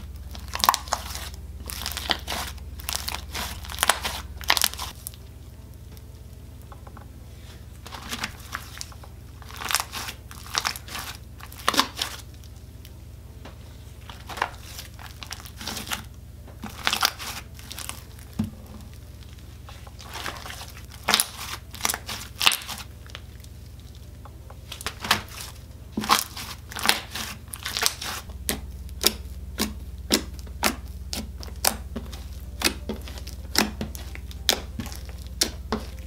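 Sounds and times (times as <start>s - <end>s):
slime crackling and popping: 0.0s - 6.7s, 7.8s - 13.0s, 14.0s - 36.0s.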